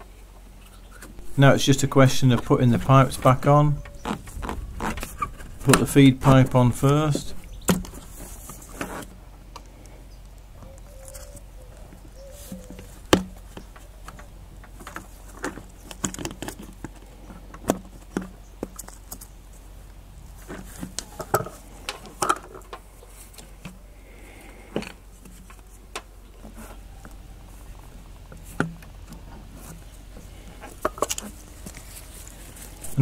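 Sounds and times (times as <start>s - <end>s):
plastic tank and hoses handled: 2.2s - 9.2s, 11.9s - 19.3s, 20.4s - 23.8s, 27.8s - 33.0s.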